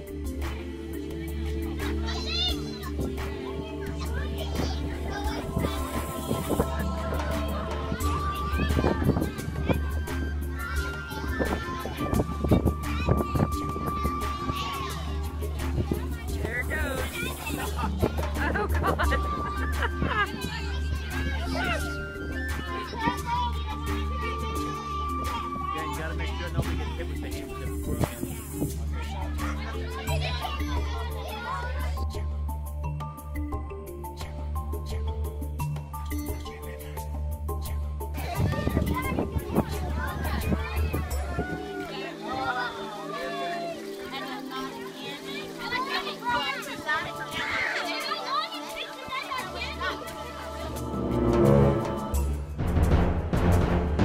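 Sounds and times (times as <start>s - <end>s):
background music with bass line: 0.0s - 41.8s, 49.6s - 54.0s
children calling out: 0.7s - 32.4s, 38.1s - 52.4s.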